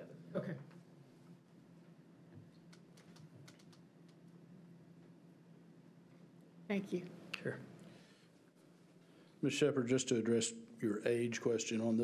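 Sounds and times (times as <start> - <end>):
low steady hum: 0.0 - 12.0
keyboard typing: 2.7 - 4.2.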